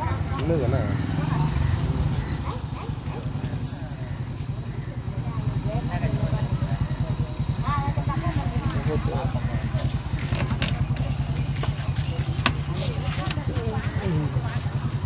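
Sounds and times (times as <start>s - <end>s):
engine idling: 0.0s - 15.0s
faint voices: 0.0s - 15.0s
high-pitched squeaks: 3.6s - 4.2s.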